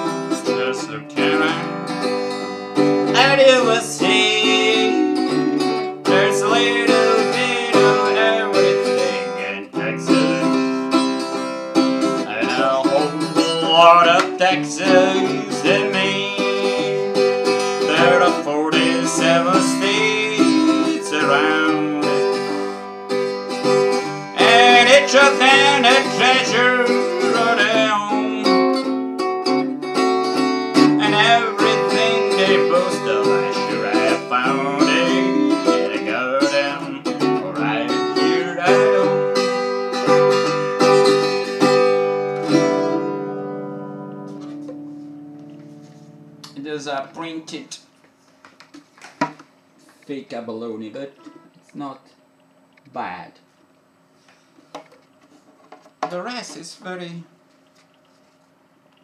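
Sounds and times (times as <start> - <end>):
man singing: 0.0 - 1.8, 3.1 - 10.8, 12.2 - 22.6, 24.4 - 28.8, 31.0 - 39.4
acoustic guitar strumming: 0.0 - 47.8, 51.2 - 51.6.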